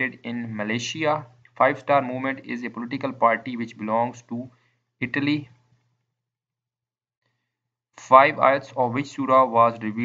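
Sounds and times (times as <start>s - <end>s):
soft breath: 4.5s - 5.0s, 7.2s - 7.7s.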